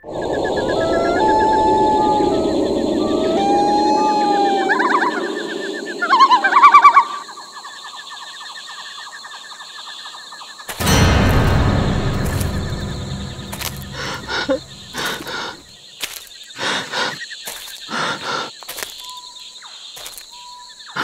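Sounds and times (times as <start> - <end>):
insect-like chirping: 0.1 - 12.4, 13.5 - 21.0
loud warbling bird cry: 0.2 - 7.4
background rumble: 10.8 - 15.7.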